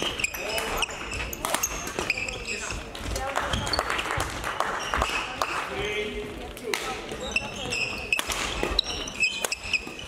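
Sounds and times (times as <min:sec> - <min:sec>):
shoes squeaking on court floor: 0:00.0 - 0:04.0, 0:04.6 - 0:10.0.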